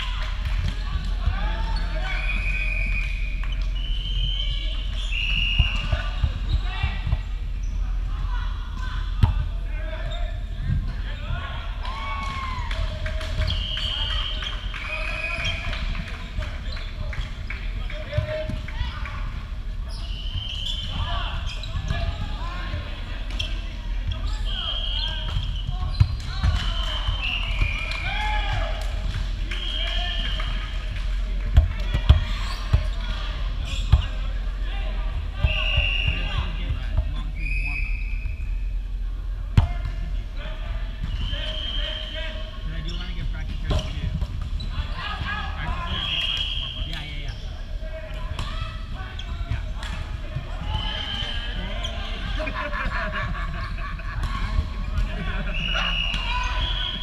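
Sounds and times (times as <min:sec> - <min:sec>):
sneakers squeaking on wooden floor: 0:19.9 - 0:22.4, 0:23.4 - 0:26.2.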